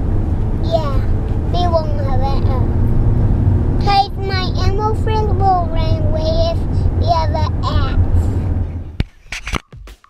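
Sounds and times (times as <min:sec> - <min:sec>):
car cabin road rumble: 0:00.0 - 0:09.6
music with sharp percussive hits: 0:09.0 - 0:10.0.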